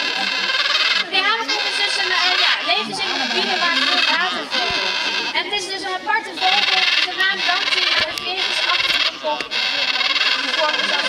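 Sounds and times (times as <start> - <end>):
overlapping voices talking: 0.0 - 11.0.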